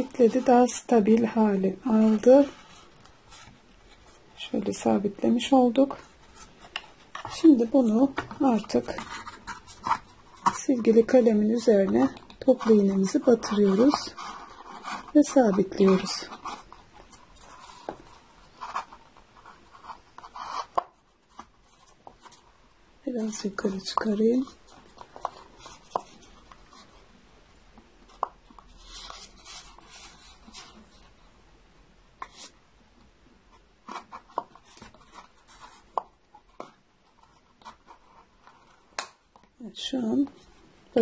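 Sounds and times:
paper and plastic rubbing: 1.5s - 22.5s, 28.1s - 31.1s.

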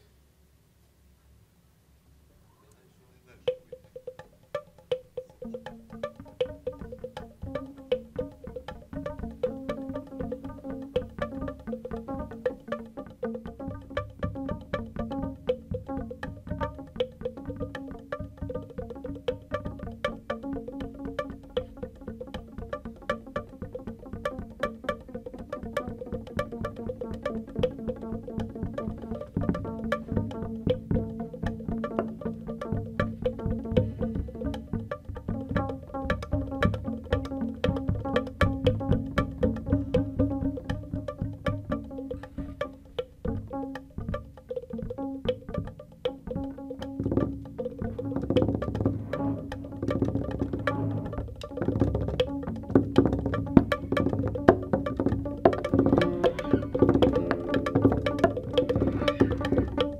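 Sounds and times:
light percussion strikes: 2.6s - 59.9s
double bass plucked and bowed: 4.0s - 59.9s.

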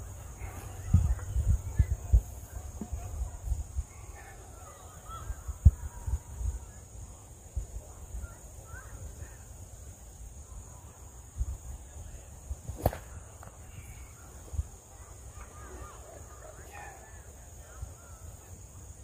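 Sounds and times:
wind rumbling on microphone: 0.0s - 9.4s
faint bird calls: 3.9s - 6.8s, 8.1s - 9.5s, 13.6s - 18.6s
sharp crack: 12.7s - 13.6s.

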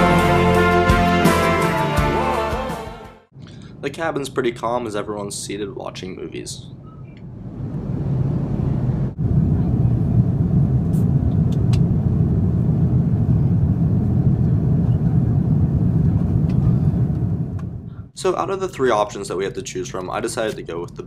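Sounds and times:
airplane cabin roar: 6.8s - 18.2s.

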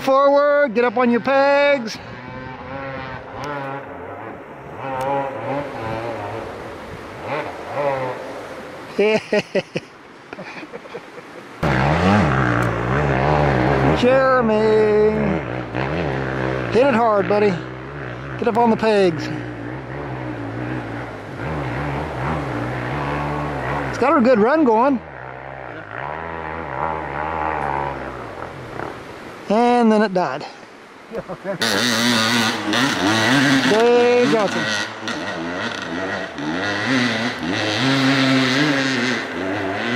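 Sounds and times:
dirt bike engine revving: 0.7s - 8.7s, 11.6s - 29.4s, 31.6s - 39.9s.

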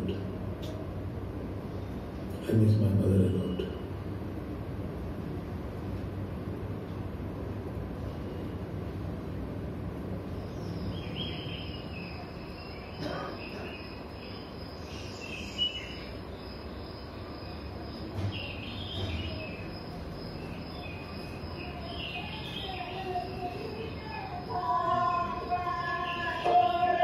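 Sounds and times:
low room rumble: 0.0s - 27.0s
insect drone: 6.4s - 27.0s
bird chirps: 10.3s - 27.0s.

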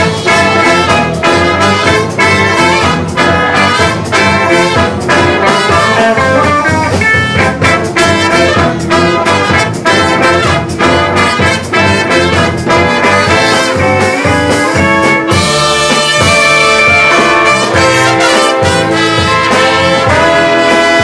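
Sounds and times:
funk brass band playing: 0.0s - 21.0s.

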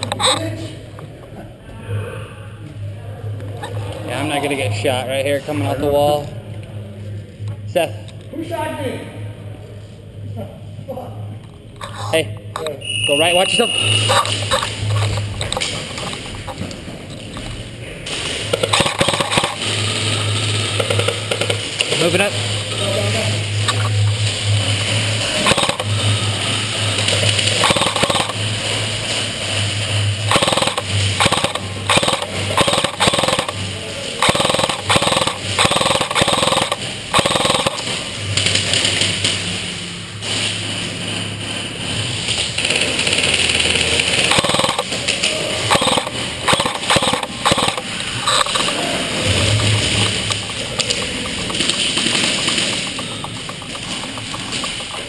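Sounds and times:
rapid toy gun shots in hall: 18.0s - 22.6s, 25.2s - 26.0s, 26.9s - 29.2s, 30.3s - 39.6s, 42.2s - 55.0s.

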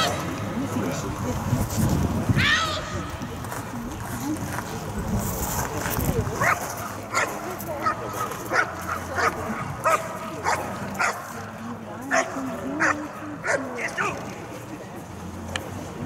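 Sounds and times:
dog barking: 6.4s - 11.3s.

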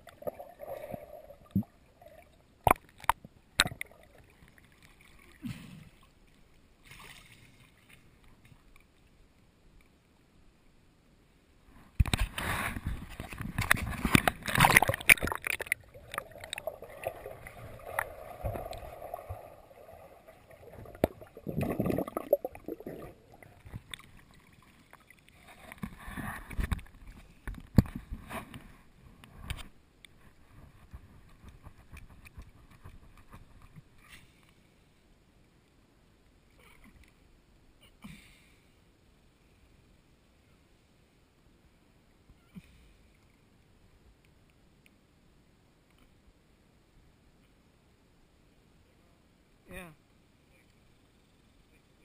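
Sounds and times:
underwater splashing and bubbling: 0.0s - 6.1s, 12.8s - 28.0s.

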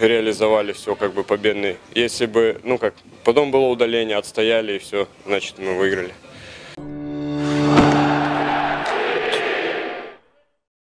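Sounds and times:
whoosh building to sharp hit: 7.4s - 10.2s.

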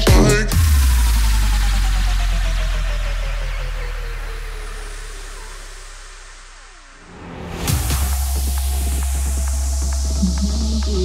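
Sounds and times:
deep bass: 0.0s - 11.0s
synth tones sliding downward: 9.2s - 11.0s.

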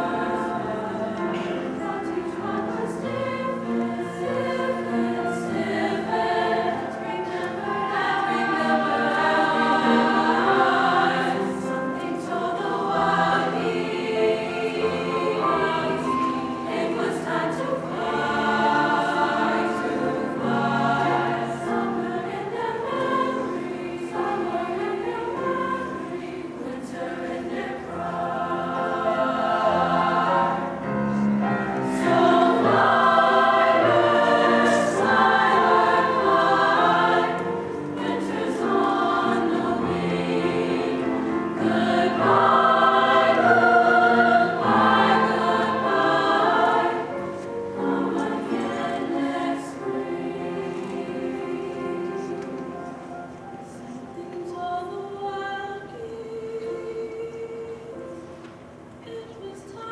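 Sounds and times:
choir singing in parts: 0.0s - 58.3s
piano accompaniment: 0.0s - 59.0s.

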